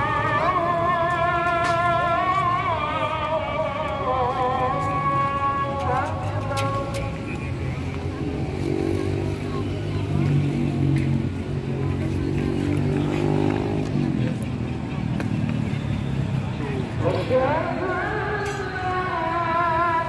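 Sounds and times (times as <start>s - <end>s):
crowd chatter: 0.0s - 20.0s
motorcycle engines droning: 0.0s - 20.0s.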